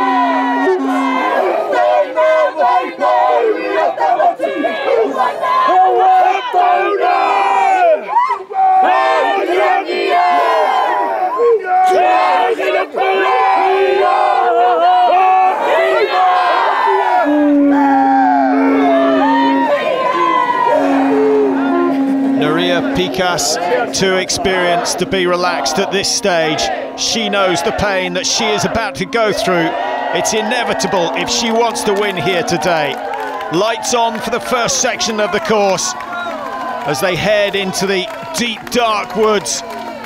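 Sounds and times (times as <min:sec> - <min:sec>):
group chanting and shouting: 0:00.0 - 0:39.8.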